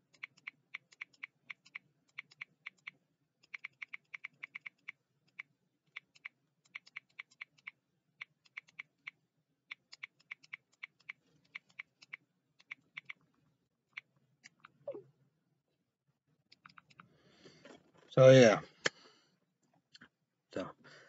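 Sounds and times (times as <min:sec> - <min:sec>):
computer keyboard typing: 0:00.0 - 0:13.2, 0:16.5 - 0:17.0.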